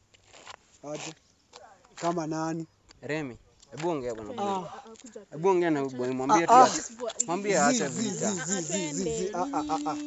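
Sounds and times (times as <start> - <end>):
person wordless wobbling vocal: 6.3 - 10.0.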